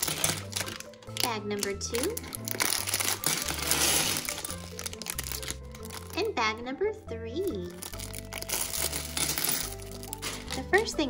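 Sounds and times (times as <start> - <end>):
plastic bag crinkling: 0.0 - 6.4, 7.4 - 11.0
background music: 0.0 - 11.0.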